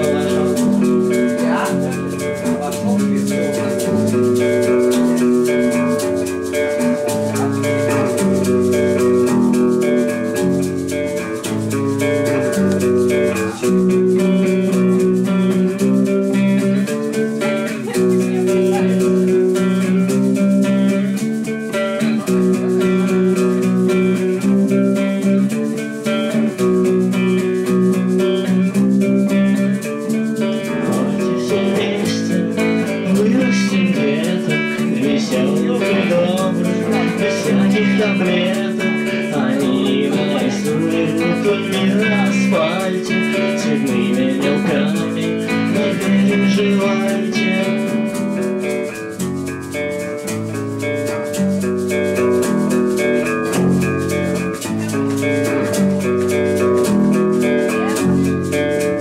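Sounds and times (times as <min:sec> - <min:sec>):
shaker rhythm: 0:00.0 - 0:59.0
strummed acoustic guitar: 0:00.0 - 0:59.0.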